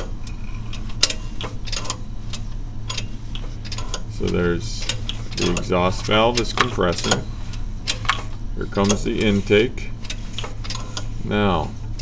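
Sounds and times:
metallic clicking of engine valves: 0.0 - 9.4, 10.0 - 11.1
steady low hum: 0.0 - 12.0.

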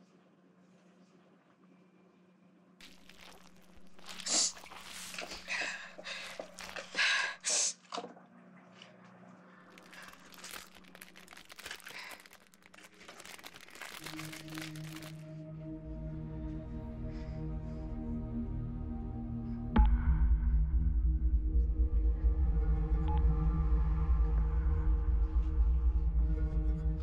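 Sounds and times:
plastic bag crinkling: 2.8 - 7.2, 9.7 - 15.3.

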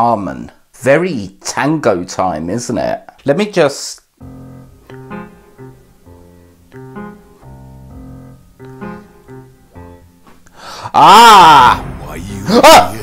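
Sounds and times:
quiet piano chords: 4.2 - 10.5.

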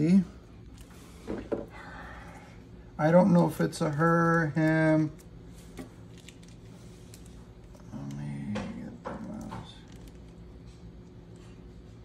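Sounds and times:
breathy sounds: 0.9 - 2.9
plastic bag crinkling: 3.4 - 8.4, 9.2 - 11.1.

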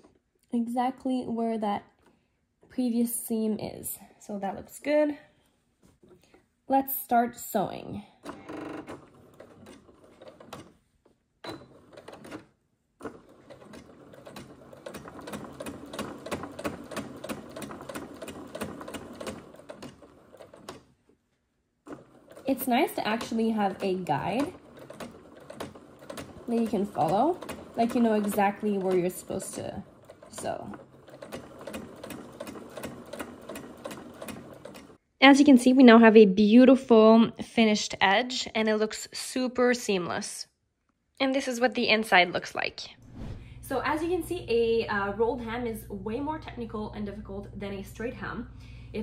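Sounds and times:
sewing machine stitching: 8.1 - 21.0, 21.8 - 35.0.

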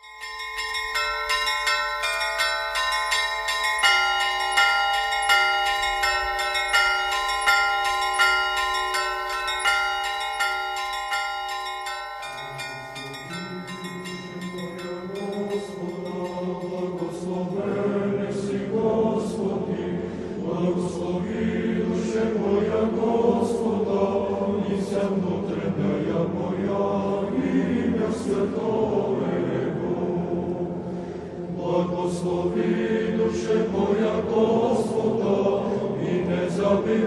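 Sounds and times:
choir singing a chant: 12.4 - 37.0.

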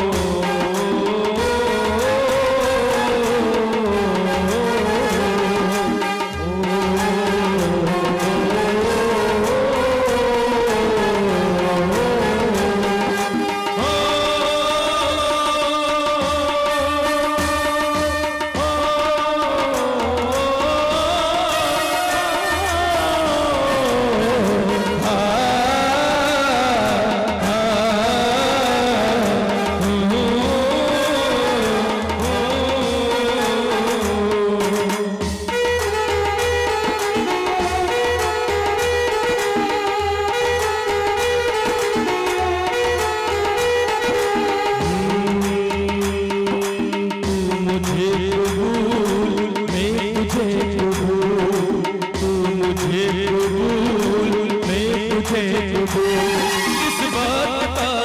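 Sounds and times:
electronic drum pad beats: 0.0 - 58.0
lead melody with pitch bends: 0.0 - 58.0.

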